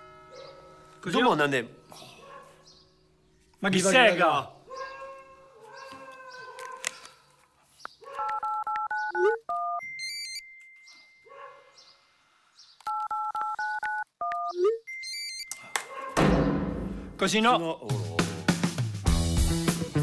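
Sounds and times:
keypad dialing beeps: 0:08.3 - 0:10.9, 0:12.8 - 0:15.6.

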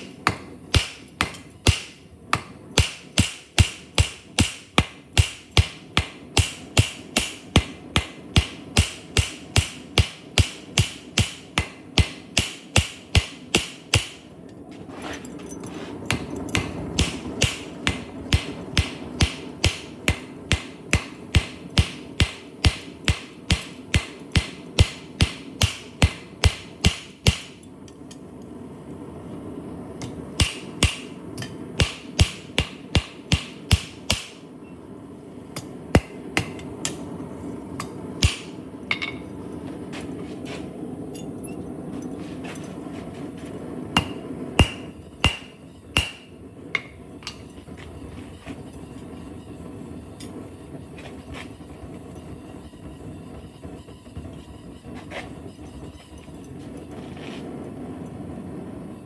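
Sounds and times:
hammer striking metal on anvil: 0:00.0 - 0:14.3, 0:16.1 - 0:28.2, 0:30.0 - 0:34.4, 0:35.6 - 0:37.0, 0:37.8 - 0:39.3, 0:44.0 - 0:47.6.

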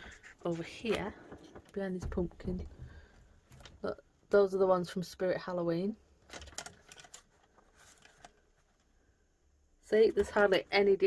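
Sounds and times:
paper lanterns clicking and rustling: 0:06.2 - 0:08.9.

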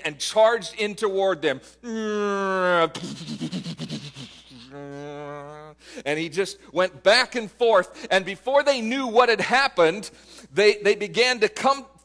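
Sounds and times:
man imitating plane engine drone: 0:01.9 - 0:05.9.

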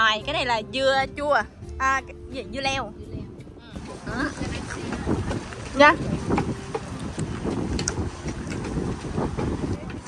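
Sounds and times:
wind rumbling on microphone: 0:00.0 - 0:10.0
faint voices: 0:03.0 - 0:10.0.

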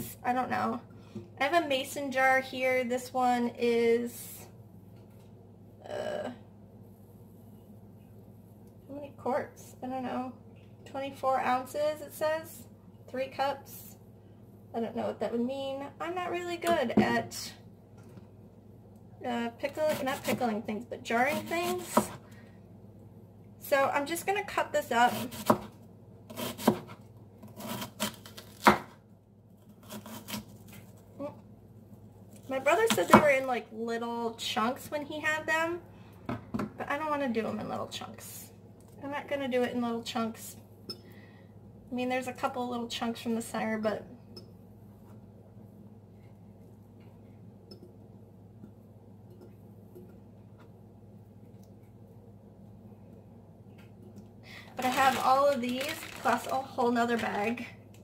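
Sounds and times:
steady low hum: 0:00.0 - 0:58.0
knife slicing onion on board: 0:21.2 - 0:22.2, 0:25.0 - 0:29.0, 0:29.7 - 0:30.8.

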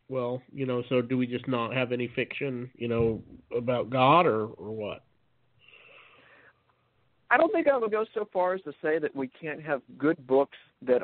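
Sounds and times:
person inhaling: 0:05.6 - 0:06.6.

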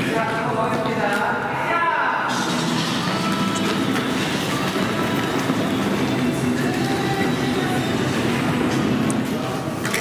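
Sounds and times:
muffled pop music: 0:00.0 - 0:10.0
steady rumbling noise: 0:02.2 - 0:09.8.

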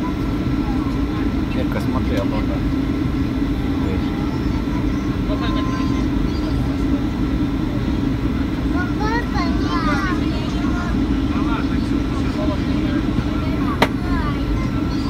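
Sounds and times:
faint voices: 0:00.0 - 0:15.0
moving vehicle rumble: 0:00.0 - 0:15.0.

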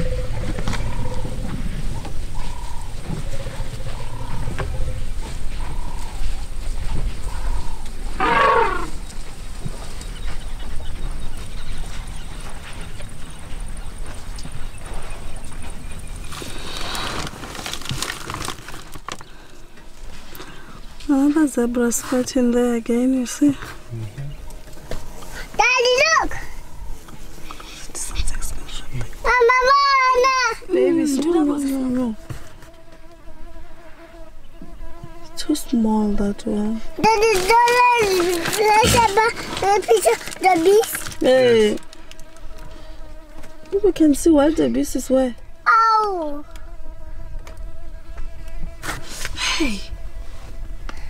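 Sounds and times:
insect buzzing: 0:00.0 - 0:51.0
elephant trumpeting: 0:07.2 - 0:09.0.

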